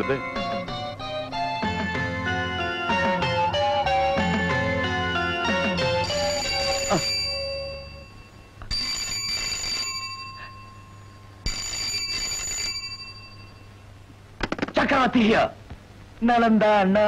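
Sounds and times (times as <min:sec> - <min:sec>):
desk telephone ringing: 0:02.7 - 0:13.8.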